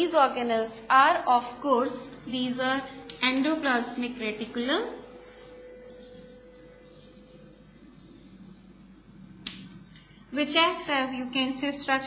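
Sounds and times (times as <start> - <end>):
chalk writing on blackboard: 5.2 - 10.2
chalk tapping on board: 5.8 - 10.1.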